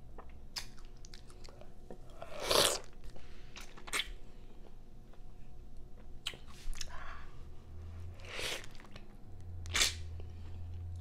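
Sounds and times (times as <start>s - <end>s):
wet mouth clicks: 3.6s - 4.2s, 9.7s - 10.0s.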